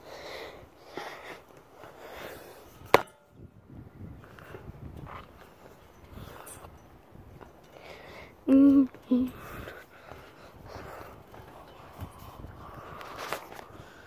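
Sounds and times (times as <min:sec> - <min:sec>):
rustling and scuffing on climbing frame: 0:00.0 - 0:14.0.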